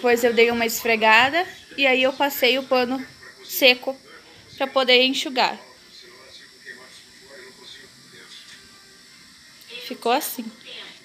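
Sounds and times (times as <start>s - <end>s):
woman speaking: 0.0s - 4.0s, 4.6s - 5.6s, 9.7s - 11.0s
background broadcast music: 0.0s - 11.0s
distant broadcast voices: 0.0s - 11.0s.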